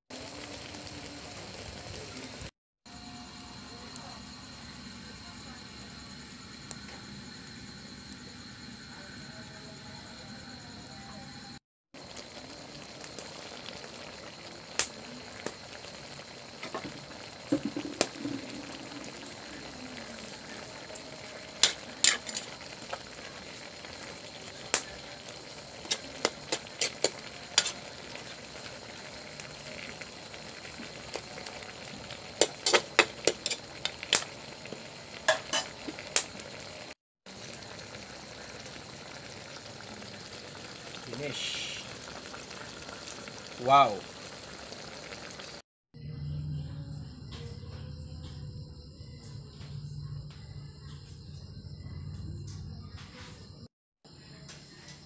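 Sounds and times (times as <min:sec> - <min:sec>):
stew simmering and bubbling: 0:00.1 - 0:55.0
metal utensil scraping a pan: 0:21.6 - 0:22.5.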